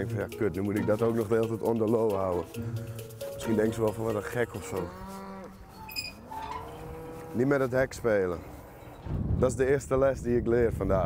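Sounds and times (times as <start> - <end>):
cattle mooing: 3.5 - 9.1.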